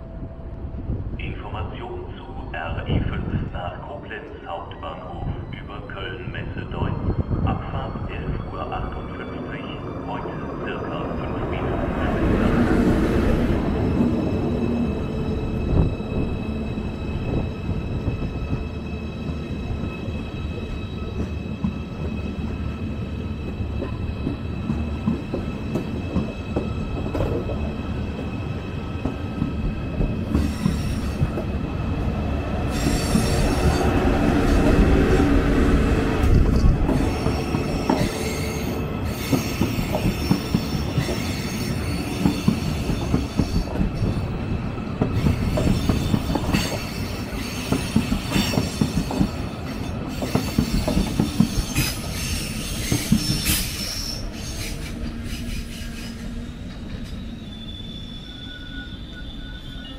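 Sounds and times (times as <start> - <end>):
train low rumble: 0.0 - 59.9
high-pitched wheel squeals: 45.2 - 59.9.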